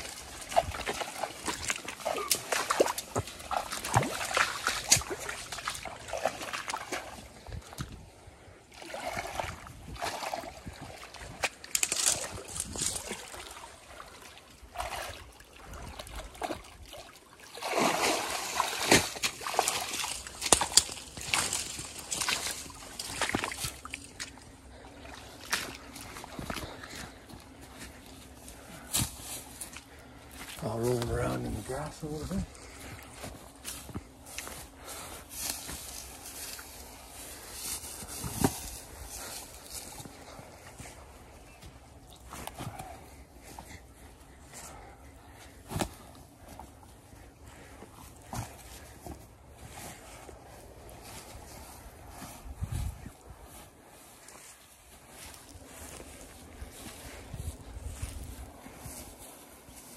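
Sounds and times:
shallow water sloshing: 0:00.0 - 0:28.9.

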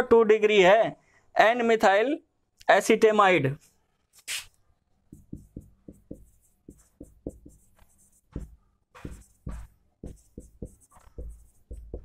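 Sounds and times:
marker writing on whiteboard: 0:05.1 - 0:12.0.

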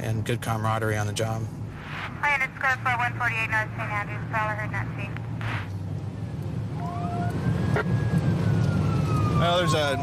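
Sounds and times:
car engine drone and road noise: 0:00.0 - 0:10.0.

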